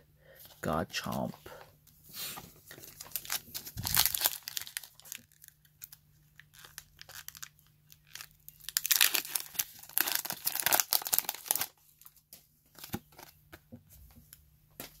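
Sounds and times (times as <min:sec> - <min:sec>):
foil wrapper crinkling and tearing: 0:02.7 - 0:12.2.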